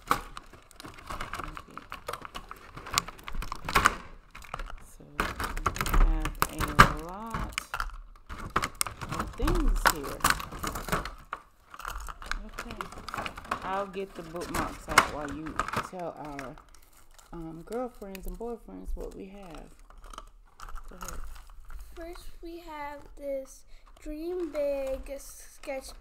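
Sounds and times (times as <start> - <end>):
plastic packaging crinkling and clicking: 0.0 - 26.0.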